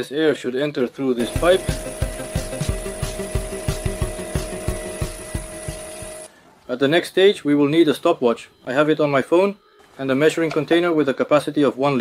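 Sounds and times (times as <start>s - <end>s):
air compressor humming and knocking: 1.2s - 6.3s.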